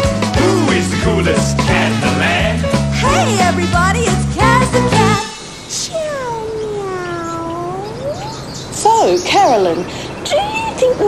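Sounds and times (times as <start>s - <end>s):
cat meowing: 5.7s - 8.5s.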